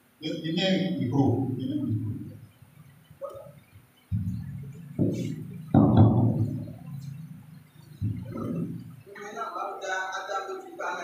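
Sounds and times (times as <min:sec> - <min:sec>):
voice on microphone: 0:00.2 - 0:02.4, 0:03.2 - 0:11.0
microphone handling thumps: 0:01.2 - 0:09.1.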